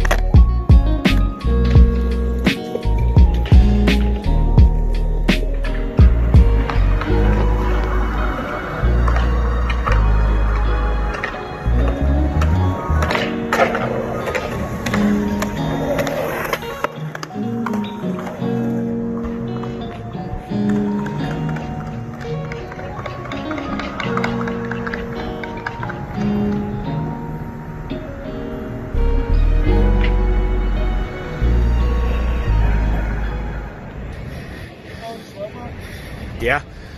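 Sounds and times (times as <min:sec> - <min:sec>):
background music with a beat: 0:00.0 - 0:14.0.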